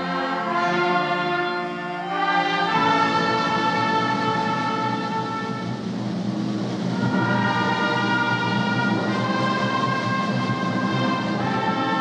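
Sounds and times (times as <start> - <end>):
orchestral strings playing chords: 0.0 - 12.0.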